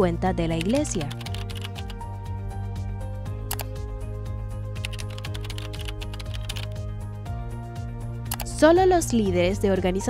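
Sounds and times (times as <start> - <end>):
background music: 0.0 - 10.0
computer keyboard typing: 0.5 - 2.0, 3.5 - 3.8, 4.8 - 6.8, 8.3 - 8.6.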